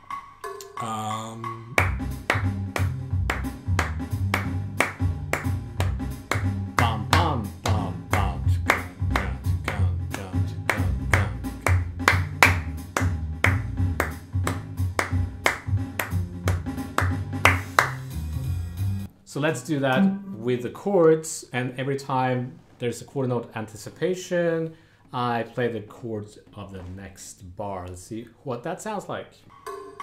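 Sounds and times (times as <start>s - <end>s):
jazz backing track: 0.4s - 19.1s
hand claps: 1.7s - 18.2s.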